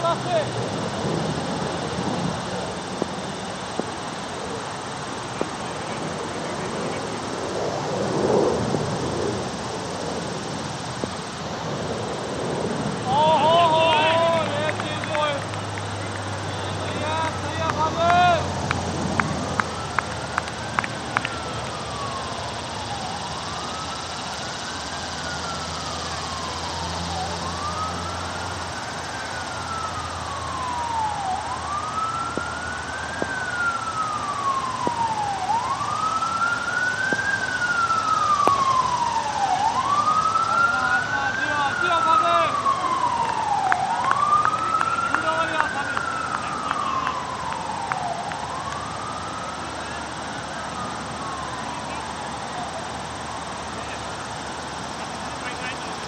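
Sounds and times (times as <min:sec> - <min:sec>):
distant siren wailing: 0:00.0 - 0:56.0.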